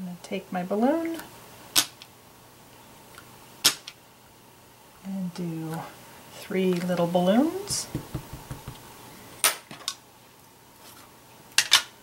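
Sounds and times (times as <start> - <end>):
clicks and taps on tabletop: 7.8 - 8.8.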